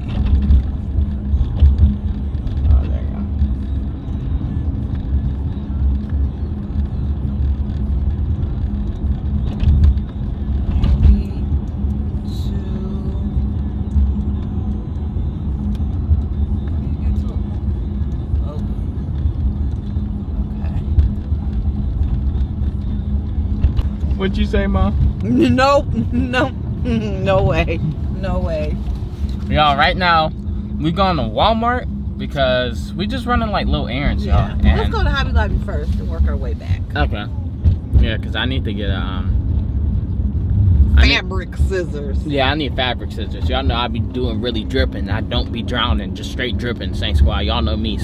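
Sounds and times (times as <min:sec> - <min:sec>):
car road and engine rumble: 0:00.0 - 0:48.0
low steady hum: 0:00.0 - 0:48.0.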